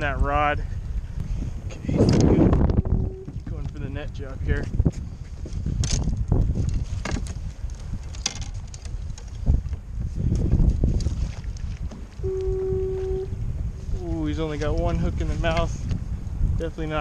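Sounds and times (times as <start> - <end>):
wind buffeting microphone: 0.0 - 17.0
water slapping against hull: 1.0 - 16.0
steady tone: 2.2 - 3.5, 12.2 - 13.6
knocks and clicks of fishing gear: 5.5 - 12.2.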